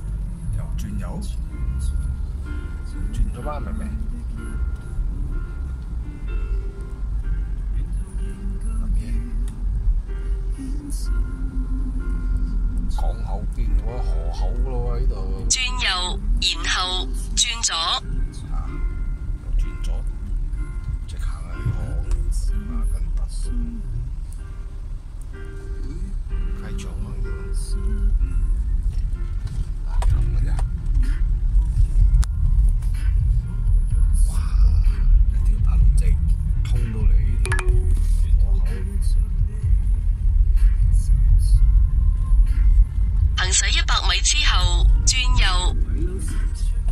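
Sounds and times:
music playing: 0:00.0 - 0:46.9
car cabin road rumble: 0:18.0 - 0:43.4.

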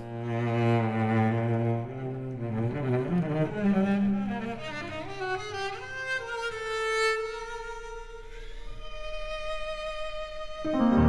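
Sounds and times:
cello bowed melody: 0:00.0 - 0:11.0.

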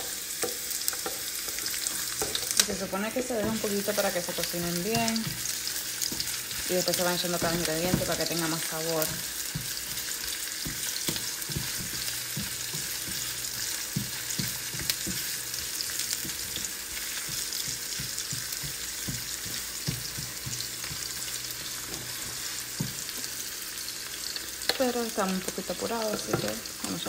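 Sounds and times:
spatula scraping pan: 0:00.0 - 0:23.4
onions sizzling in oil: 0:00.0 - 0:27.0.

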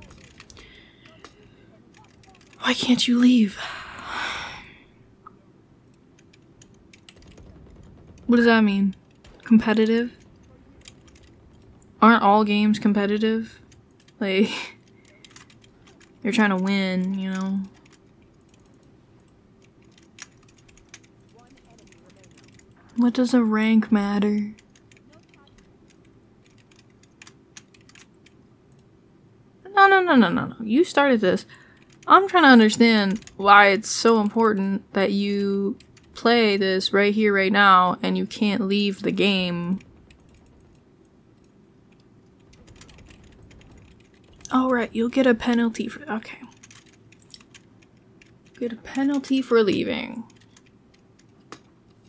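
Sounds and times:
computer keyboard typing: 0:00.0 - 0:03.0, 0:05.9 - 0:23.2, 0:24.4 - 0:28.9, 0:31.7 - 0:34.3, 0:35.7 - 0:36.3, 0:39.2 - 0:51.7.

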